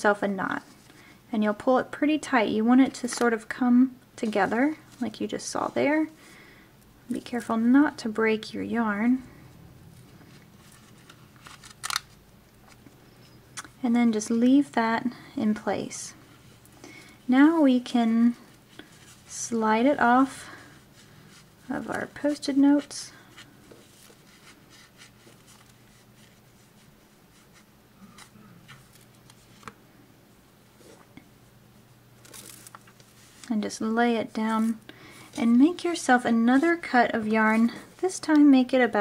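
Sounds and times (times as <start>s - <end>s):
yarn rubbing against paper: 17.3s - 28.7s, 32.4s - 38.2s
yarn rustling: 32.2s - 38.2s.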